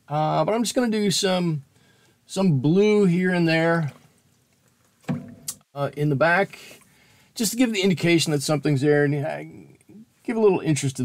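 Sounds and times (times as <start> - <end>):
sharp click: 5.1 - 5.6.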